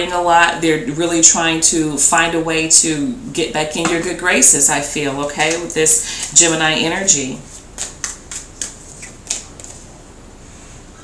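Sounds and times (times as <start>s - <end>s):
cards being shuffled: 7.5s - 9.9s.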